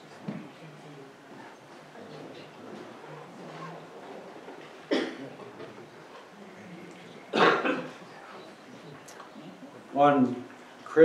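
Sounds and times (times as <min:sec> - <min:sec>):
man coughing: 0:04.9 - 0:05.2, 0:07.3 - 0:08.0.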